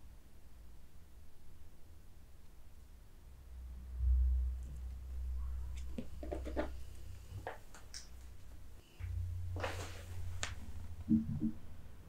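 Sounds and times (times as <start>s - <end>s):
low steady hum: 0.0s - 12.0s
soft rustles: 5.7s - 11.0s.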